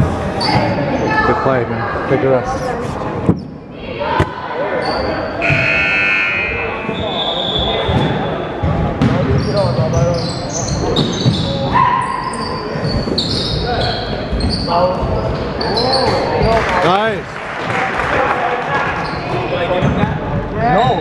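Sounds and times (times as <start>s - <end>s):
voices: 0.2s - 21.0s
shoe squeaks: 0.4s - 1.2s, 4.7s - 6.0s, 9.3s - 16.3s.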